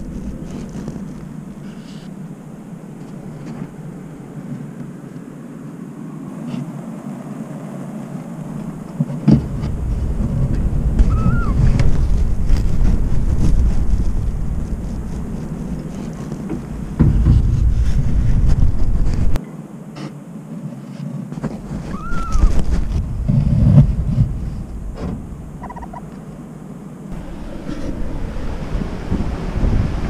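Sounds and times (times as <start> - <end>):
storm wind rumbling and buffeting: 0.0 - 19.4, 20.3 - 30.0.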